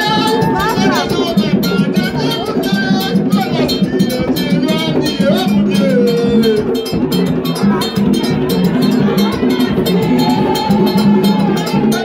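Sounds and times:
hand drums beating: 0:00.0 - 0:12.0
voices: 0:00.0 - 0:12.0.

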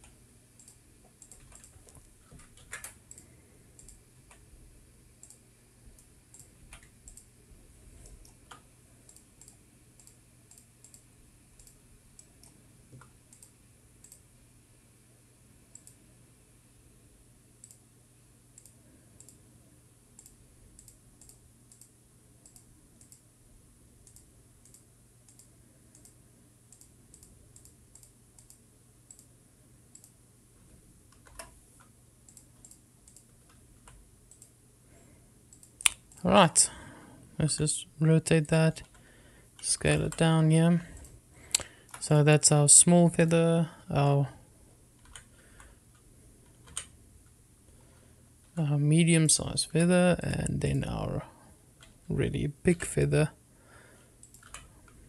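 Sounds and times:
mouse and keyboard clicking: 0:00.0 - 0:04.4, 0:31.1 - 0:34.5, 0:46.5 - 0:46.9, 0:54.2 - 0:55.0
low steady hum: 0:00.0 - 0:55.0.

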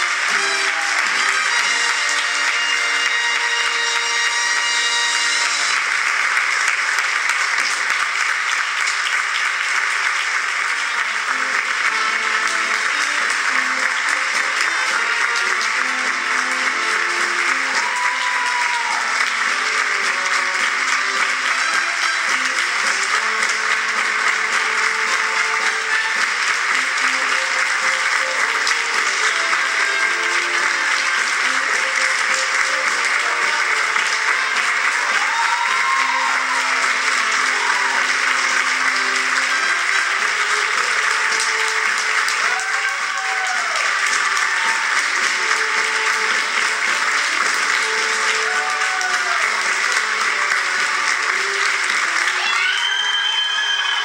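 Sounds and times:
audience applauding: 0:00.0 - 0:54.0
music playing: 0:00.0 - 0:54.0.

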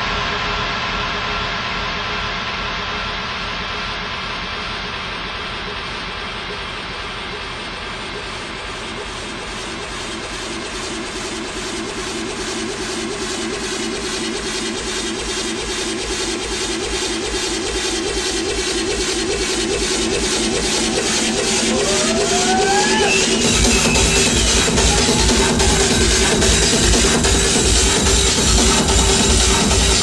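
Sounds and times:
techno build-up: 0:04.1 - 0:30.0.

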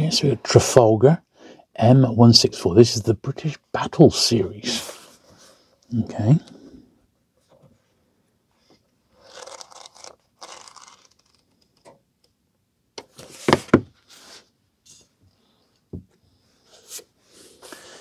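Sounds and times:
book pages rustling: 0:09.2 - 0:11.9
book knocking down: 0:13.3 - 0:14.0.

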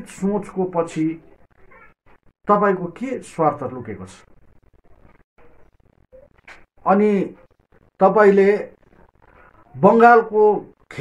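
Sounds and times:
man speaking: 0:00.0 - 0:01.2, 0:02.5 - 0:04.3, 0:06.8 - 0:08.8, 0:09.7 - 0:11.0.

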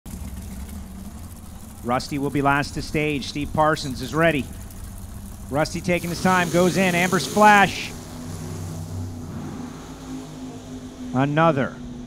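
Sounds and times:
race car engines idling: 0:00.1 - 0:12.0.

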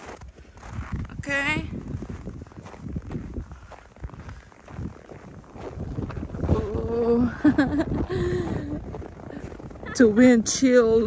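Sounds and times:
footsteps on snow: 0:00.0 - 0:11.0
wind buffeting microphone: 0:00.0 - 0:11.0.

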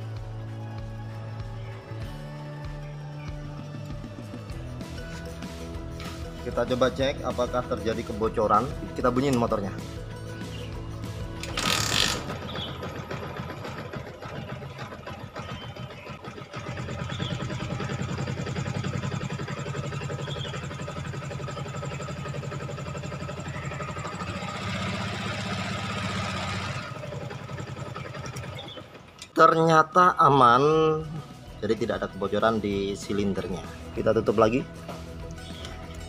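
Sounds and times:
motorcycle engine idling: 0:03.3 - 0:29.4.

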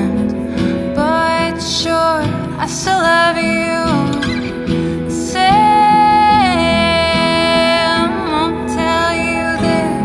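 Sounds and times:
person singing: 0:00.0 - 0:10.0
strummed acoustic guitar: 0:00.0 - 0:10.0.

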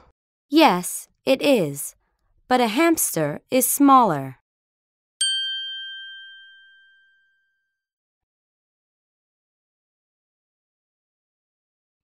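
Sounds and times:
bright chime ding: 0:05.2 - 0:07.6.

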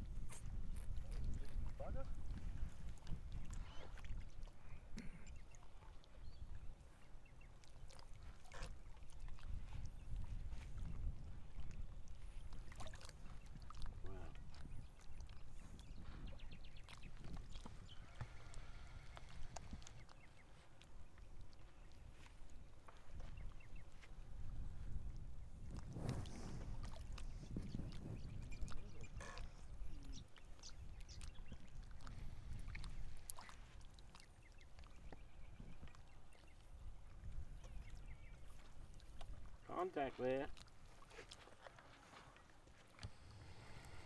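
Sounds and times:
low uneven rumbling: 0:17.4 - 0:20.2, 0:42.9 - 0:44.0.

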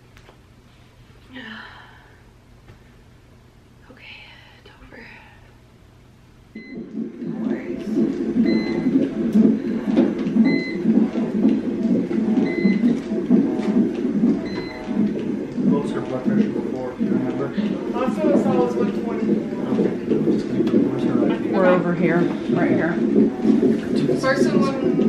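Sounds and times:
monitor beeping: 0:06.6 - 0:25.0
voices: 0:06.8 - 0:25.0.

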